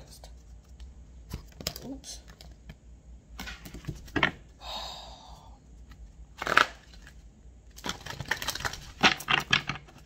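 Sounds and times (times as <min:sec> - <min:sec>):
person sighing: 0:04.6 - 0:05.6.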